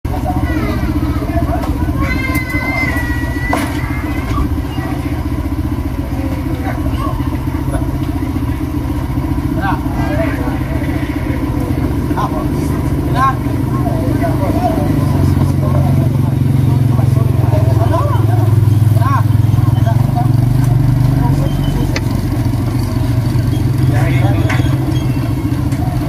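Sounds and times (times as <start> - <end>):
people talking: 0.0 - 26.0
motorcycle engine idling: 0.1 - 26.0.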